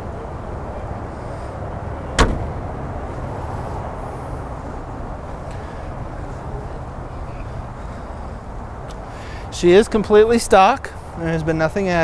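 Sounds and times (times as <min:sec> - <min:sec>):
car engine idling: 0:00.8 - 0:08.8
sharp thump: 0:02.2 - 0:02.9.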